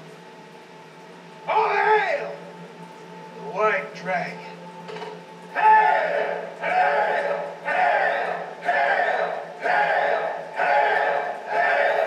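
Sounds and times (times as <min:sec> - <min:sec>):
men chanting in unison: 0:05.5 - 0:12.0.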